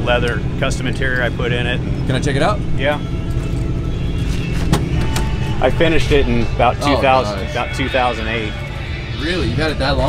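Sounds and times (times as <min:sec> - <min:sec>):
low rumble: 0:00.4 - 0:10.0.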